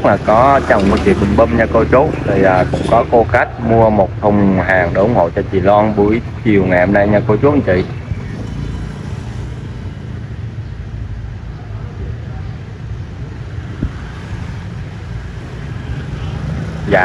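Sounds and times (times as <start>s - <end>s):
motor scooters passing: 0.0s - 17.0s
traffic engine rumble: 0.0s - 17.0s.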